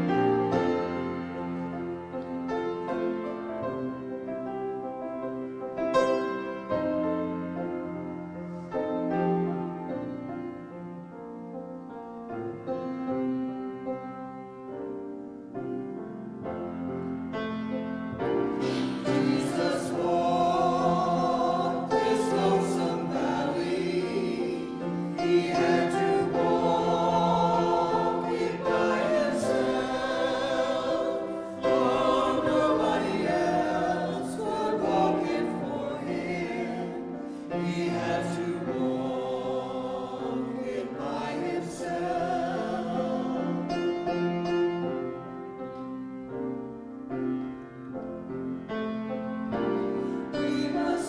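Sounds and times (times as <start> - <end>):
mixed choir singing: 0.0 - 1.7, 18.3 - 44.4, 49.6 - 51.0
grand piano: 0.0 - 51.0.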